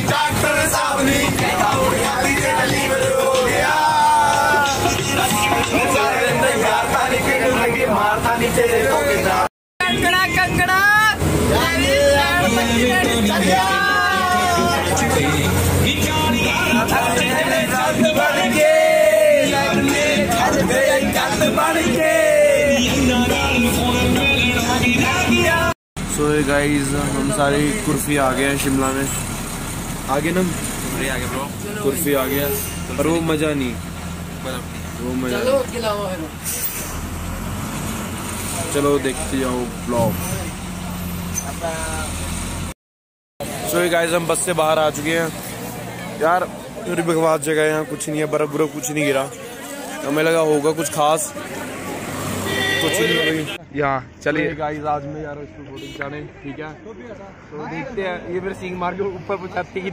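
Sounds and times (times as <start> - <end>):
voices talking: 0.0 - 36.9, 43.4 - 59.9
bus engine drone: 0.0 - 42.8, 43.4 - 54.5
young men calling out: 0.3 - 23.8, 52.4 - 53.6.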